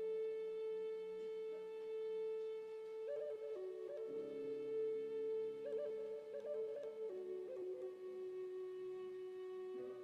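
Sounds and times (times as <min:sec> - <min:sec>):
flute melody: 0:00.0 - 0:10.0.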